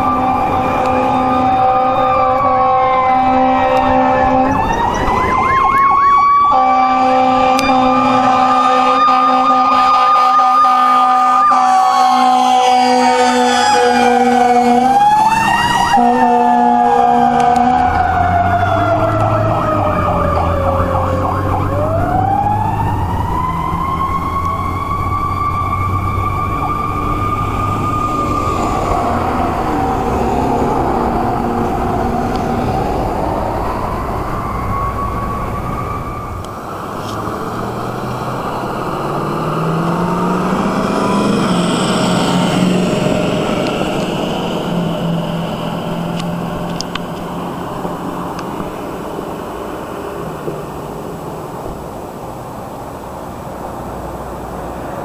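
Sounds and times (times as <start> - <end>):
horn blasts: 0.0 - 4.7, 6.5 - 15.0, 15.8 - 17.9
fire engine siren wailing: 0.0 - 51.9
truck engine rumbling: 0.0 - 55.0.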